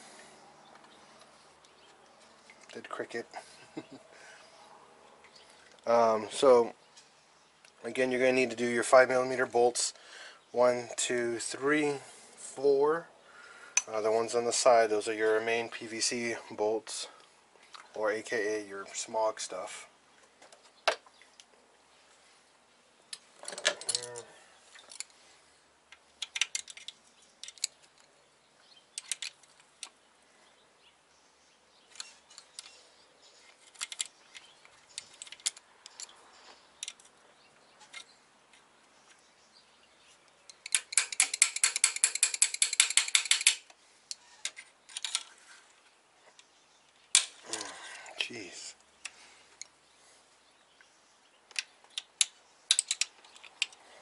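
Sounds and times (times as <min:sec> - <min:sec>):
ratchet wrench clicking: 0:40.6 - 0:43.6.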